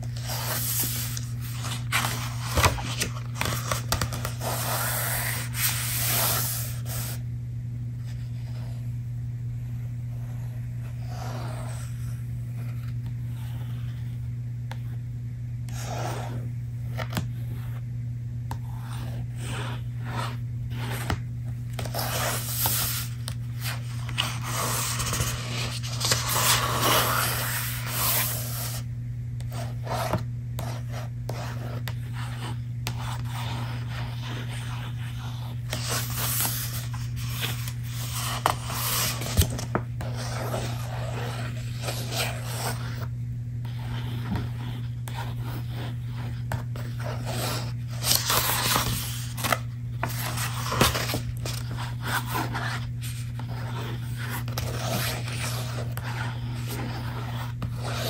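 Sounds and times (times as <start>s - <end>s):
hands rubbing book pages: 0.0s - 7.2s, 21.8s - 28.8s, 31.8s - 43.1s.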